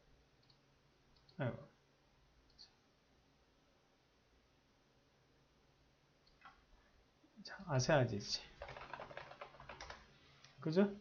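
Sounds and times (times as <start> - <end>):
computer mouse clicks: 0.4 - 1.4, 6.2 - 6.6.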